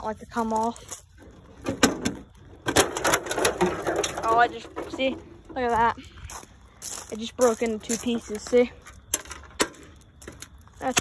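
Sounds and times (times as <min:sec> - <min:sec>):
plastic hood clunking and rattling: 0:01.3 - 0:05.8.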